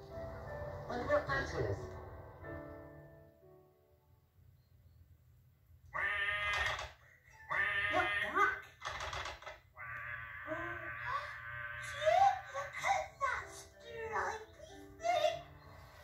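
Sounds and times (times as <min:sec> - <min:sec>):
puppet voices giggling and chattering: 0:06.0 - 0:09.2, 0:09.8 - 0:15.4.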